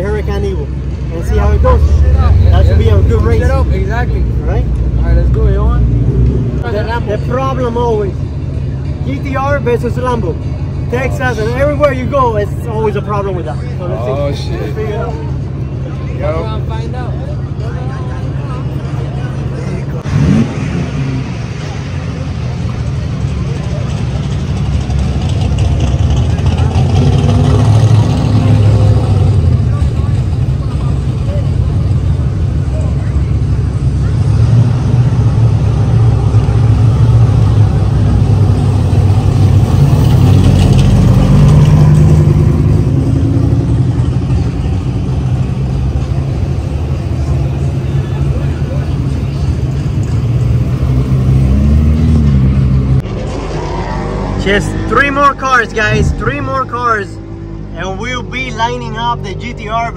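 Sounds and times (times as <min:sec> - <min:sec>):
sports car engines idling: 0:00.0 - 0:40.9, 0:41.7 - 0:59.9.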